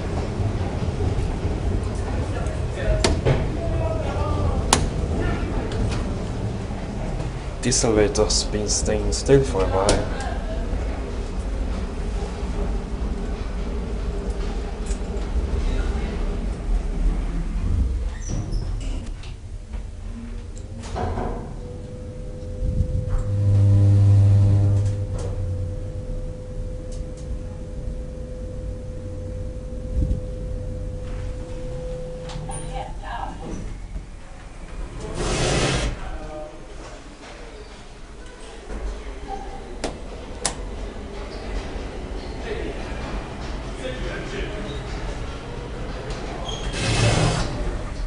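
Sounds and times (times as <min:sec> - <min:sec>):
elevator low hum: 0:00.0 - 0:48.0.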